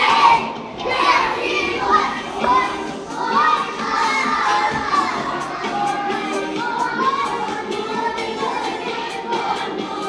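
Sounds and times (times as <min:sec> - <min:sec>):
children singing and shouting: 0:00.0 - 0:10.0
music: 0:00.0 - 0:10.0.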